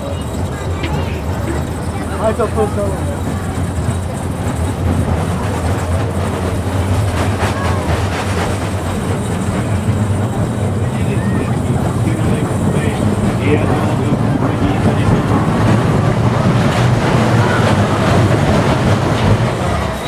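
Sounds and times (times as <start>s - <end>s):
faint voices: 0.0s - 20.0s
roller coaster cars rumbling: 0.0s - 20.0s.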